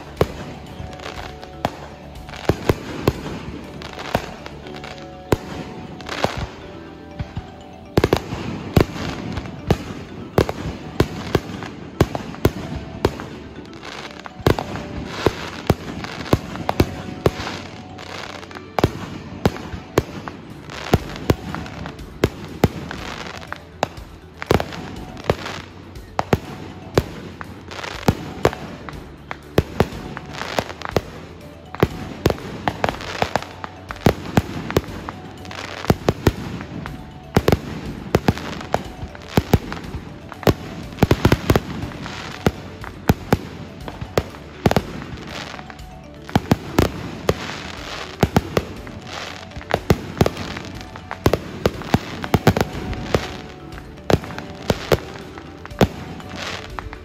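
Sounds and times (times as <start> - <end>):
fireworks bangs: 0.0 - 57.0.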